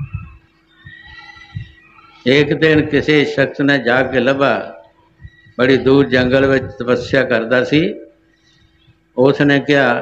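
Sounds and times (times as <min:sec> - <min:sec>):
soft low thumps: 0:00.0 - 0:01.9, 0:05.1 - 0:07.3
low electrical hum: 0:00.0 - 0:10.0
man speaking: 0:02.2 - 0:04.9, 0:05.6 - 0:08.2, 0:09.2 - 0:10.0.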